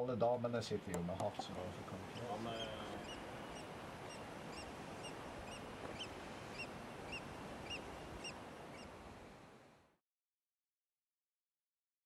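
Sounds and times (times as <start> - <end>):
background hiss: 0.0 - 10.0
bird chirping: 2.0 - 8.9.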